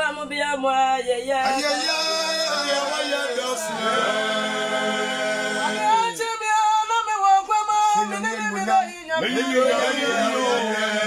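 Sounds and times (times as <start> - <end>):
group singing a cappella: 1.4 - 11.0.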